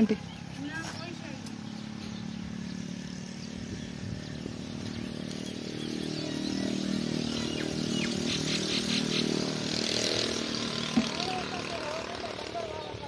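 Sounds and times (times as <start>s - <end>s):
engine humming: 0.0s - 13.0s.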